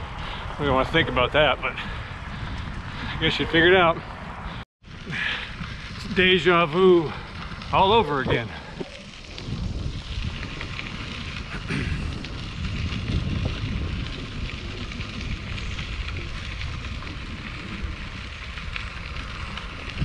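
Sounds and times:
bicycle tyres rolling on gravel: 0.0s - 20.0s
wind rumbling on microphone: 0.0s - 20.0s.

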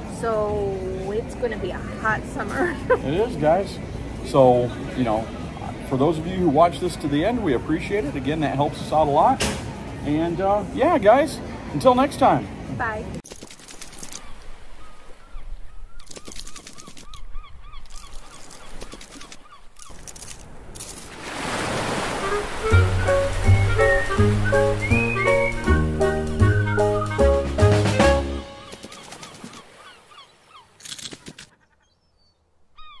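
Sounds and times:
hiss like breaking surf: 21.1s - 26.4s
bird honking calls: 21.9s - 27.4s
cartoon music: 22.2s - 28.7s
rising and falling chirps: 22.2s - 28.8s.

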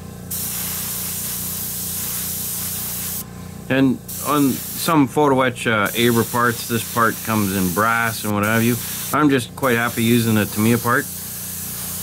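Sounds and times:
airbrush spraying hiss: 0.3s - 3.2s, 4.1s - 5.0s, 5.9s - 12.0s.

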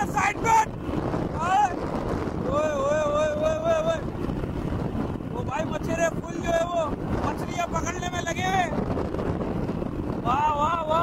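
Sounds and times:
man calling out: 0.0s - 0.7s, 2.5s - 4.0s
wind rushing over microphone: 0.0s - 11.0s.

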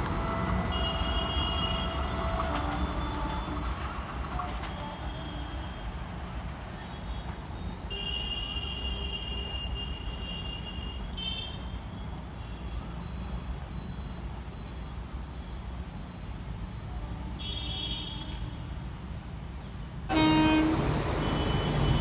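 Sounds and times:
train rumbling along track: 0.0s - 8.0s, 18.2s - 22.0s.

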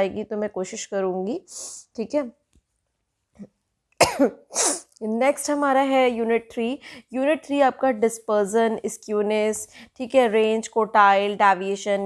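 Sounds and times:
woman coughing: 4.0s - 4.9s.

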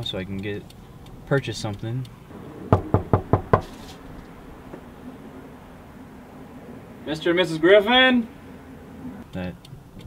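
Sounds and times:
knocks on a door: 2.7s - 3.7s.

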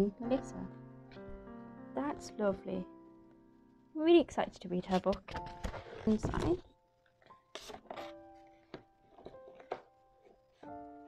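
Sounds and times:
slow piano notes: 0.0s - 11.0s
paper pages rustling: 4.8s - 10.7s.

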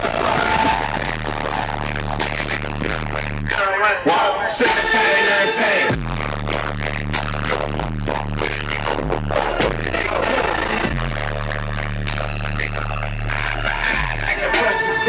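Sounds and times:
bass-heavy music from car speakers: 0.0s - 15.0s.

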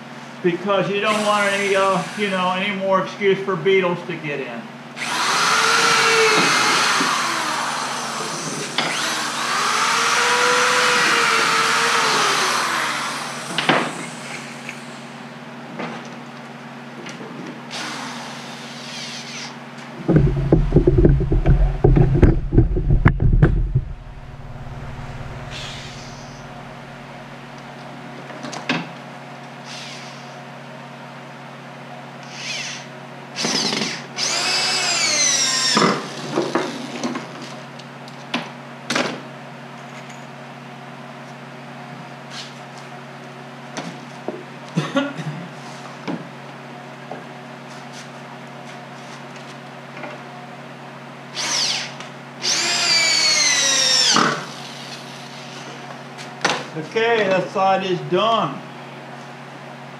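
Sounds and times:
power drill driving screws into wood: 1.1s - 2.4s, 5.0s - 15.0s, 17.7s - 19.6s, 29.6s - 30.4s, 32.2s - 37.2s, 51.3s - 55.7s
loud low rumbling knocks: 20.0s - 27.1s.

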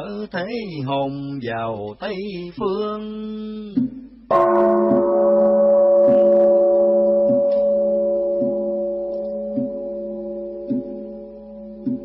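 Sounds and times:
soft regular taps: 3.7s - 4.0s, 4.9s - 5.2s, 7.2s - 7.7s, 8.3s - 9.9s, 10.6s - 11.0s, 11.8s - 12.0s
deep bell ringing: 4.3s - 12.0s.

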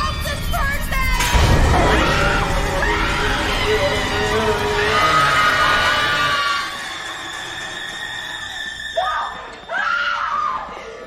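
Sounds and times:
tense horror film score: 0.0s - 11.0s.

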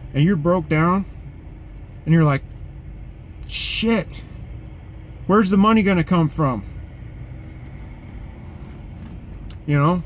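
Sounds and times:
truck engine humming: 0.0s - 10.0s.

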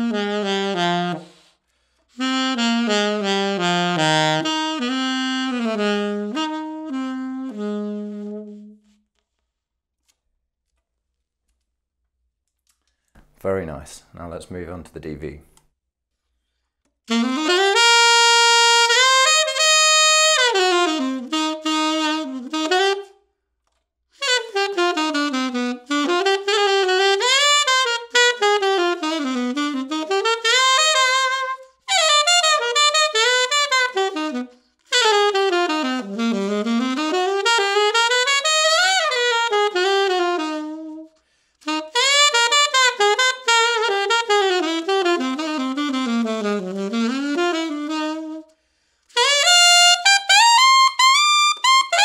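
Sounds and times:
alto saxophone playing: 0.0s - 9.2s, 17.1s - 23.2s, 24.2s - 52.0s.

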